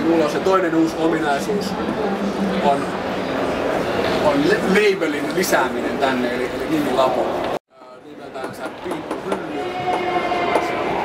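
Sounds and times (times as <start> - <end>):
busy indoor hall noise: 0.0 - 11.0.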